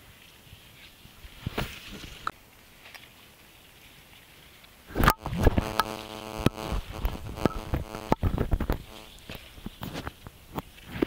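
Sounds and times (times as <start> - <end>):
rustling among plants: 0.0 - 4.9
faint insect buzz: 4.9 - 9.5.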